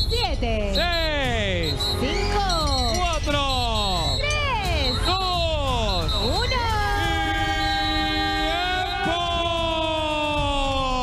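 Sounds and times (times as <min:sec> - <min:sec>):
excited voices shouting: 0:02.0 - 0:11.0.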